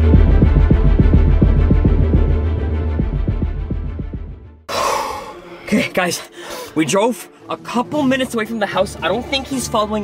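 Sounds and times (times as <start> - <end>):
throbbing electronic music: 0.0 - 4.7.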